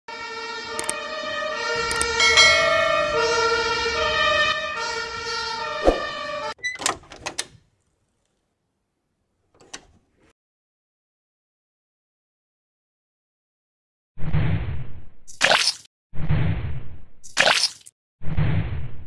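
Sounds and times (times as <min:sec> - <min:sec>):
cartoon two-tone siren: 0:00.1 - 0:06.6
sliding door: 0:01.7 - 0:07.6.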